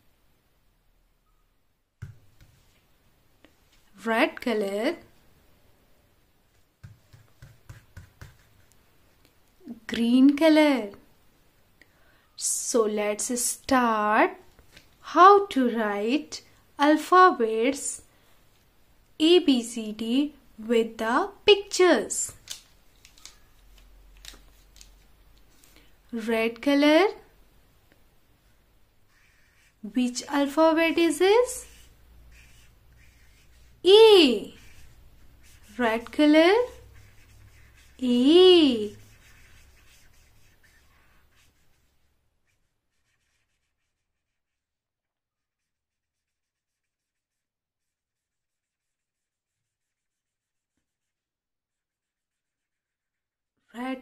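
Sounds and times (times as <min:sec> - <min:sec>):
woman speaking: 0:04.0 - 0:05.1, 0:09.6 - 0:11.0, 0:12.4 - 0:14.4, 0:15.0 - 0:18.0, 0:19.2 - 0:22.4, 0:26.1 - 0:27.3, 0:29.8 - 0:31.8, 0:33.8 - 0:34.8, 0:35.6 - 0:36.9, 0:37.9 - 0:39.2, 0:53.8 - 0:54.0
marker scratching on paper: 0:06.5 - 0:08.8, 0:29.1 - 0:44.7, 0:45.4 - 0:53.3
plastic marker pens clicking: 0:22.4 - 0:25.5.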